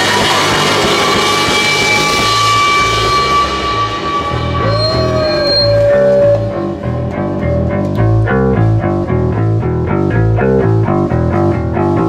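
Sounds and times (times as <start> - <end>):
distorted electric guitar: 0.0 - 12.0
drum kit: 0.0 - 12.0
electric bass: 0.0 - 12.0.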